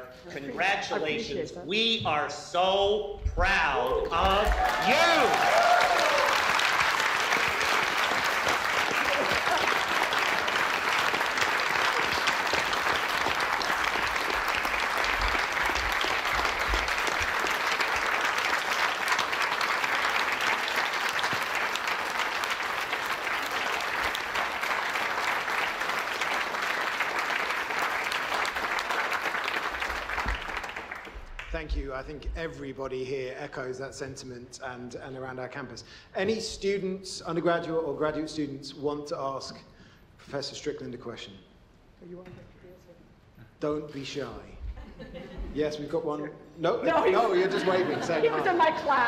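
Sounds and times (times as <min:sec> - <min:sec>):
people applauding: 0:03.8 - 0:31.8.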